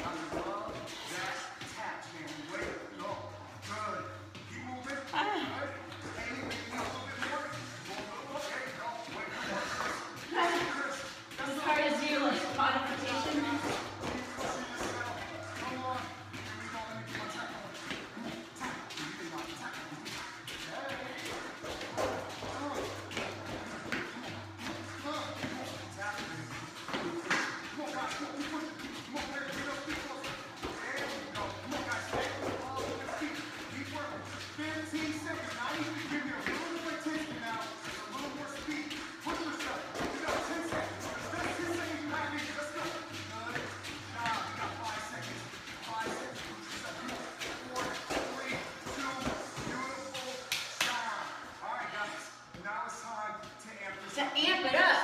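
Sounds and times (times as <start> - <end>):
sneakers shuffling on padded floor: 0.0 - 54.9
workout music: 0.0 - 55.0.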